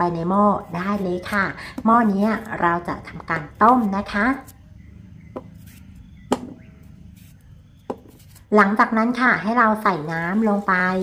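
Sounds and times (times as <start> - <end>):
knife cutting potato: 0.6 - 4.6, 5.4 - 8.5.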